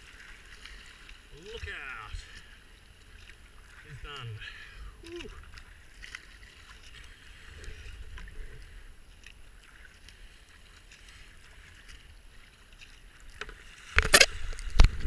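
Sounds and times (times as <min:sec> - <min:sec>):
paddle drips and splashes: 0:00.0 - 0:15.0.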